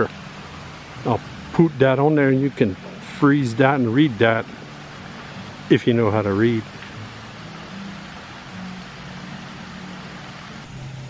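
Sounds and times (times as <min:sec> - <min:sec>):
even rushing haze: 0:00.0 - 0:11.0.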